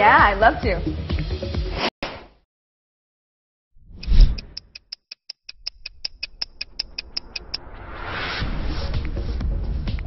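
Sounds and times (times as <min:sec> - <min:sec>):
stopwatch ticking: 0:04.0 - 0:07.6.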